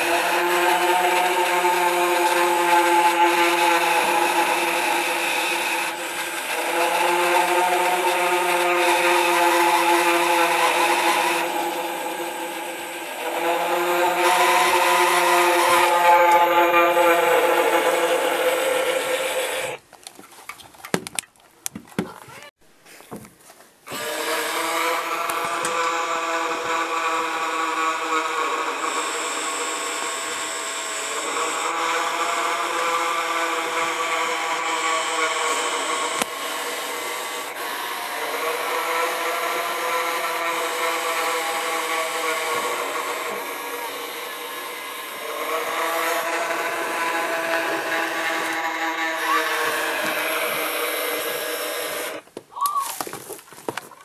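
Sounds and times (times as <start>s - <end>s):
small electric motor whining: 0.0s - 19.8s, 23.9s - 52.2s.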